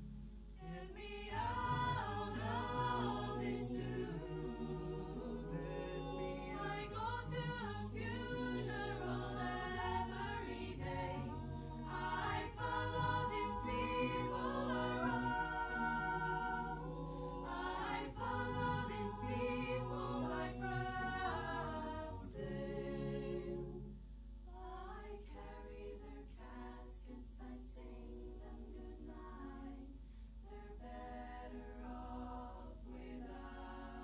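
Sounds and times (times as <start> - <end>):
a cappella choir singing: 0.0 - 34.0.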